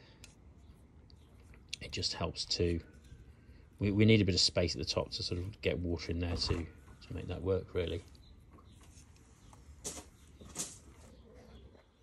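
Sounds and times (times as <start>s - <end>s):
hands pressing potting compost: 0.0s - 12.0s.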